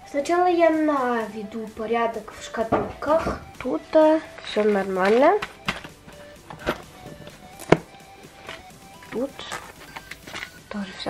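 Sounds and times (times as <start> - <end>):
quiet background music: 0.0 - 11.0
cardboard boxes knocking and tapping: 4.7 - 10.5.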